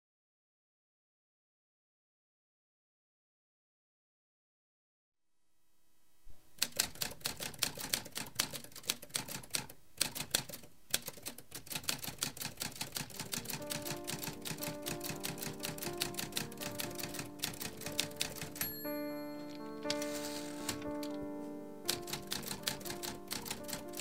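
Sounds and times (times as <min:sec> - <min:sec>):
manual typewriter keystrokes: 0:06.6 - 0:21.2, 0:21.9 - 0:24.0
soft music with sustained notes: 0:12.8 - 0:24.0.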